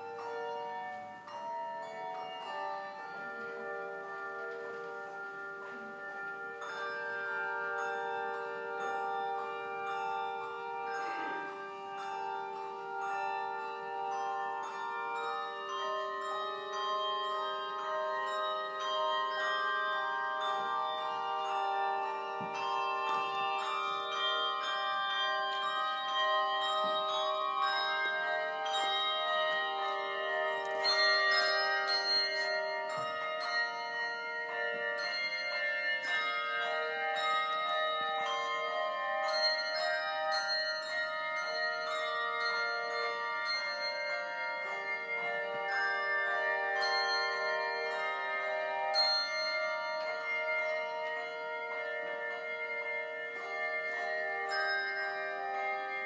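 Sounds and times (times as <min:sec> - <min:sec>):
handbell choir playing: 0:00.0 - 0:56.0.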